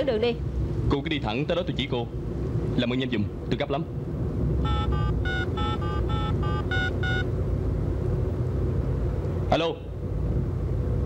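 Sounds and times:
phone keypad beeps: 4.6 - 7.3.

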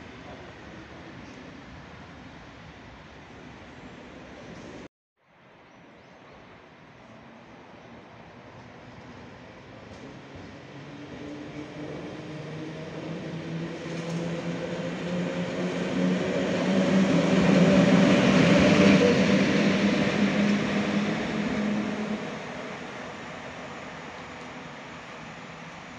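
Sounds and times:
electric locomotive passing: 7.0 - 25.9.

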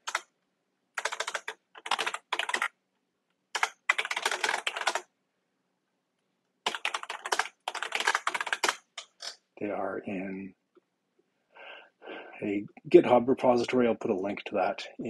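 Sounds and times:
computer keyboard typing: 0.0 - 0.3, 1.0 - 2.8, 3.5 - 5.0, 6.6 - 9.3.

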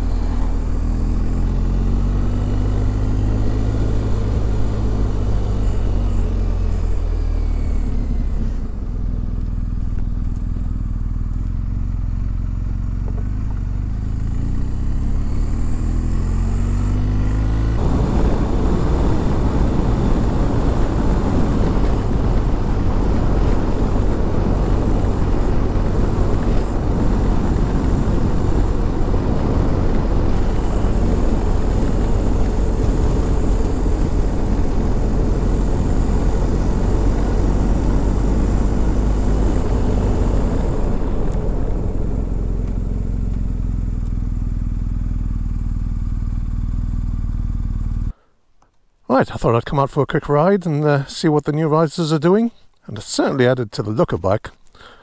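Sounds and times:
motorcycle engine running: 0.0 - 48.2
wind and road noise: 0.0 - 55.0.

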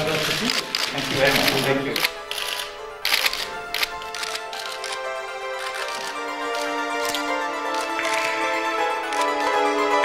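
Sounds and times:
camera shutters clicking: 0.0 - 9.8
soft background music: 0.0 - 10.0.

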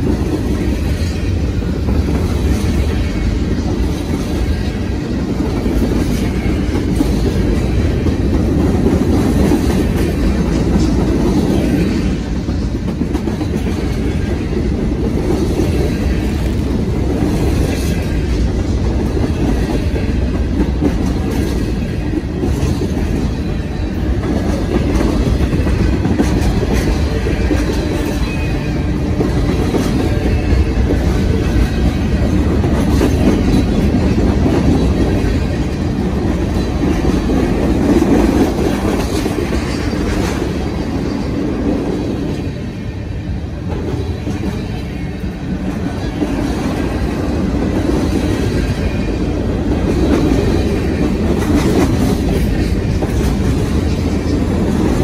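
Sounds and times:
freight train wheels rumbling: 0.0 - 55.0.

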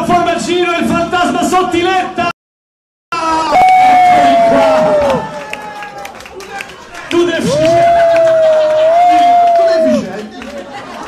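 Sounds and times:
crowd chatter: 5.3 - 11.0.

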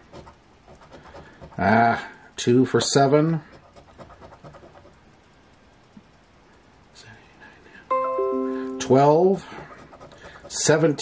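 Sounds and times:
ringing musical chord: 7.9 - 9.4
coin scratching ticket: 9.0 - 11.0.

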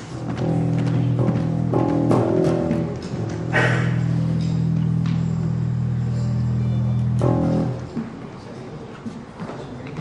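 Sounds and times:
electric guitar notes: 0.0 - 8.2
faint stage noise: 0.0 - 10.0.

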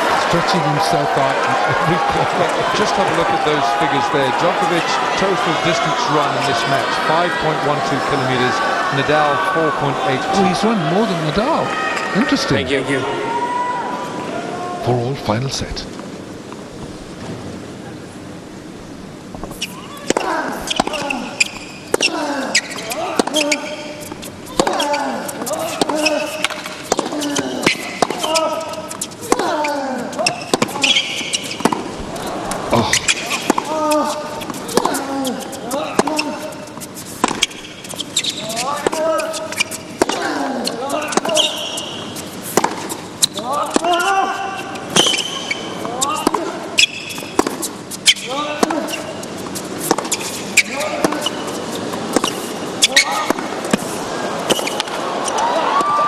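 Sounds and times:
tennis ball bouncing: 19.4 - 53.9, 54.5 - 55.9
tennis racquet striking ball: 20.0 - 32.0, 32.8 - 35.1, 35.7 - 53.9
player grunting: 32.6 - 33.1.

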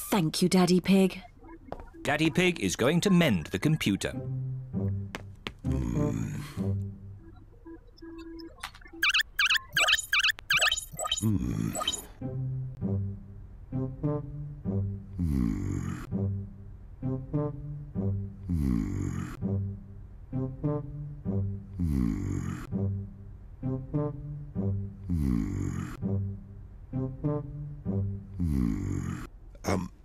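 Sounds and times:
low electronic beep: 7.1 - 12.1
high warbling chirps: 8.1 - 12.1.

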